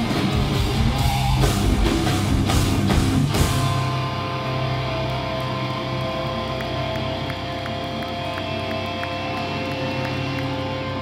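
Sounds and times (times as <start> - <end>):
stage amplifiers humming: 0.0 - 11.0.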